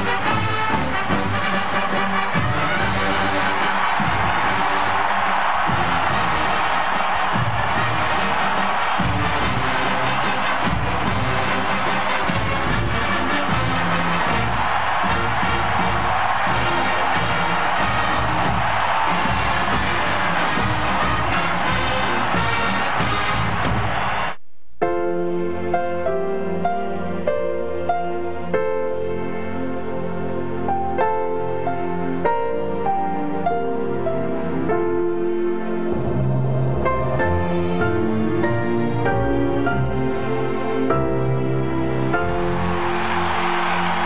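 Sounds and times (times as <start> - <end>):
marching band playing brass tune: 0.0 - 24.3
stadium crowd cheering: 0.0 - 24.4, 30.7 - 44.0.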